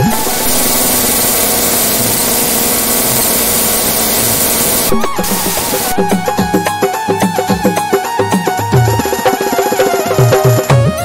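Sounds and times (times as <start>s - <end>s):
loud steady hiss: 0.0s - 7.0s.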